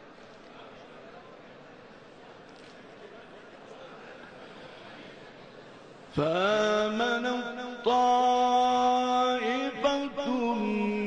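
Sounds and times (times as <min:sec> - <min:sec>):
man reciting melodically: 0:06.1 - 0:11.0.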